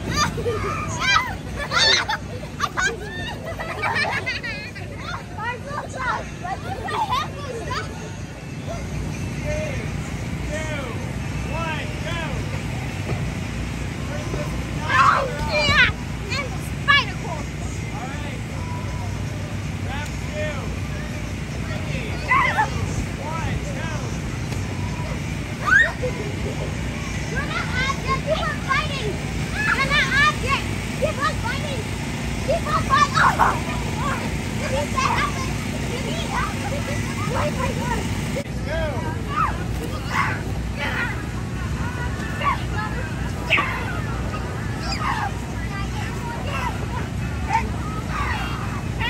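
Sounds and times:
children shouting and squealing: 0.0s - 9.2s, 14.4s - 17.5s, 21.2s - 23.4s, 24.0s - 49.0s
air blower humming: 9.4s - 49.0s.

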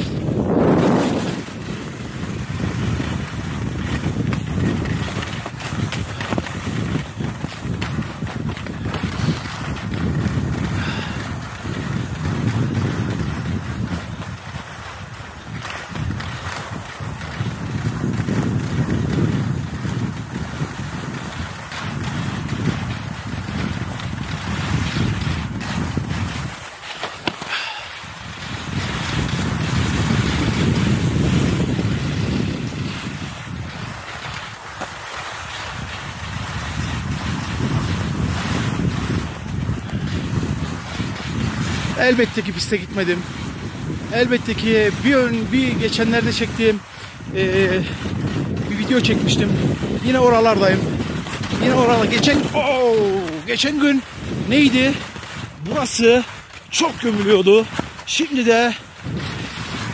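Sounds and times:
skis scraping over hard snow: 0.0s - 59.9s
wind buffeting microphone: 0.0s - 59.9s.

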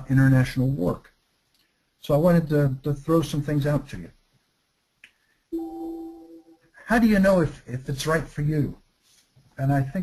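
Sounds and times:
steady held tone: 5.5s - 6.8s.

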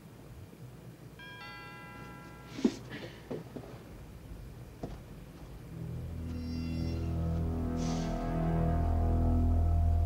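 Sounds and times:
two-note door chime: 1.2s - 2.9s.

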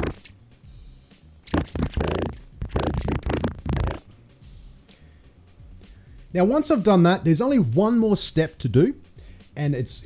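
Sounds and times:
garbled warbling voice: 0.0s - 0.2s, 1.5s - 4.0s.

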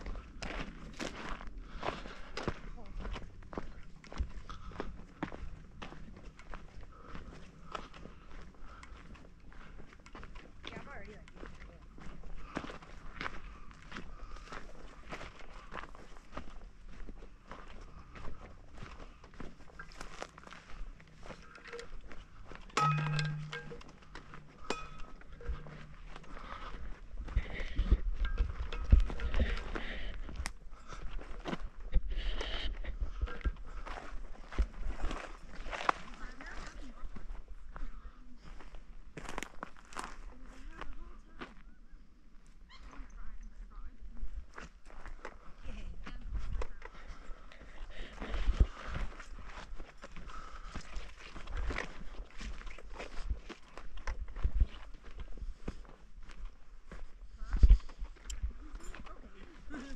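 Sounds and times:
footsteps crunching on dirt: 0.0s - 59.9s
low hum: 21.2s - 29.8s.

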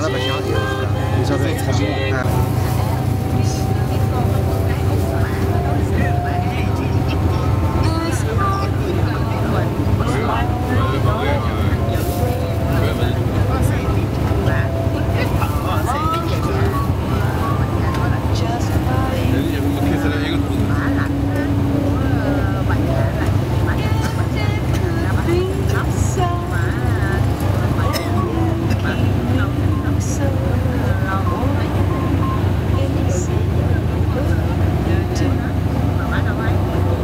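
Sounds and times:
bus engine and tyres rumbling: 0.0s - 37.0s
indistinct passenger chatter: 0.0s - 37.0s.

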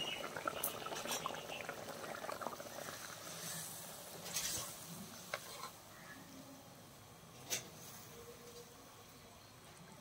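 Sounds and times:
curry bubbling and popping: 0.0s - 5.5s.

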